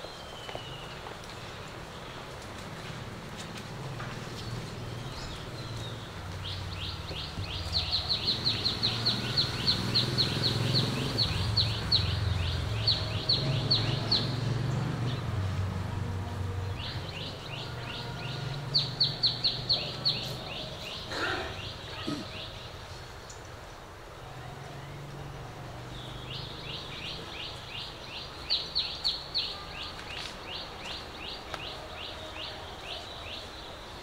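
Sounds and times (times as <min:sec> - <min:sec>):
bird chirping: 0:04.3 - 0:15.5, 0:16.6 - 0:23.7, 0:25.9 - 0:34.0.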